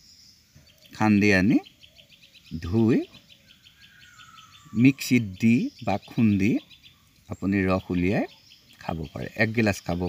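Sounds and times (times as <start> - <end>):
rapid high chirping: 0.0 - 10.0.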